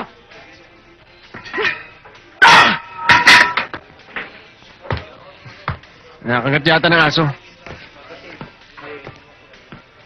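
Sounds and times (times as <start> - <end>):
loud yelps: 2.4 - 2.9.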